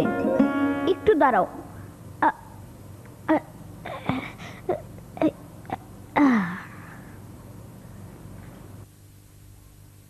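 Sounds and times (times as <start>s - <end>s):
person sobbing: 3.3s - 5.4s, 6.2s - 6.8s.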